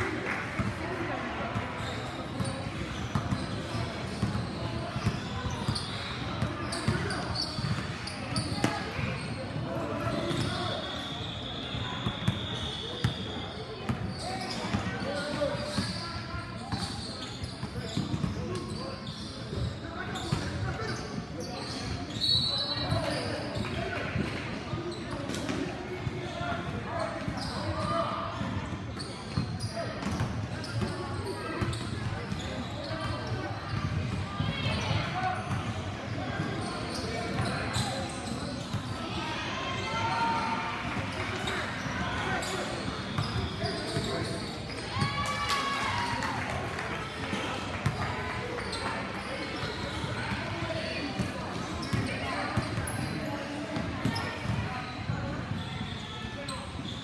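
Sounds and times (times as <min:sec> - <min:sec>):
basketball bouncing on court: 0:01.8 - 0:08.8.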